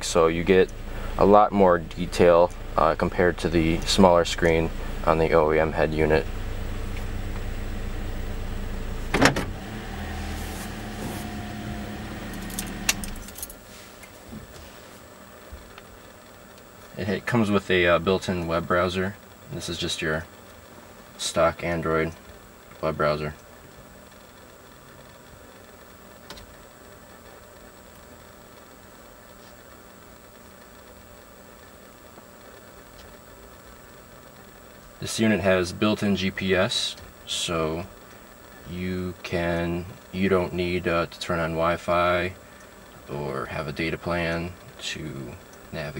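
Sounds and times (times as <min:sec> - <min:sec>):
car engine idling: 0:00.0 - 0:45.9
loud clunk: 0:09.1 - 0:09.6.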